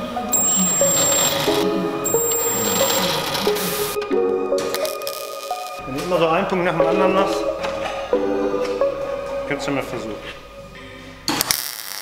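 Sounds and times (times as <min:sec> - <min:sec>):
electronic synthesizer music: 0:00.3 - 0:04.0.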